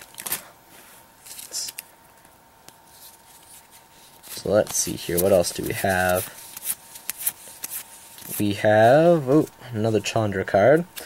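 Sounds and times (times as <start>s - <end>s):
rustling of cards and wrapper: 0.0s - 0.5s, 1.2s - 9.5s.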